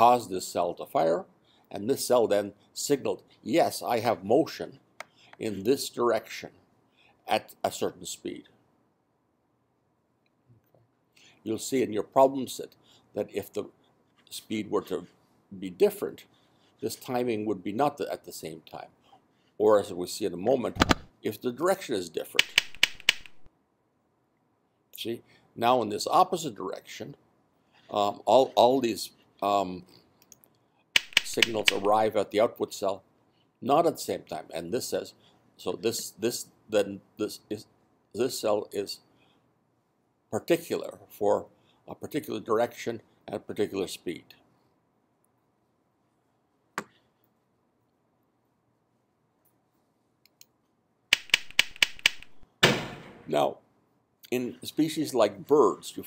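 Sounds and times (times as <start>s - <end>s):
sharp clicks: 22.4s - 23.5s, 30.2s - 32.0s, 51.1s - 52.4s.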